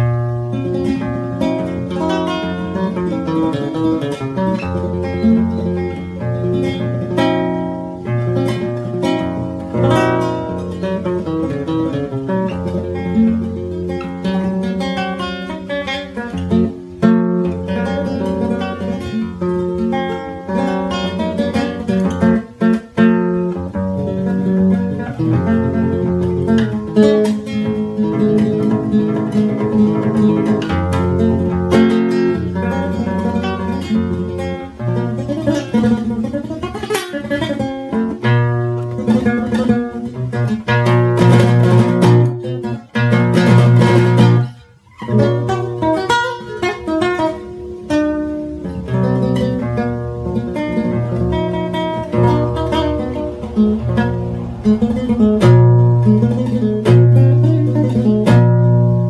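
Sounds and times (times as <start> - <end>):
flamenco guitar fingerstyle: 0.0 - 59.0.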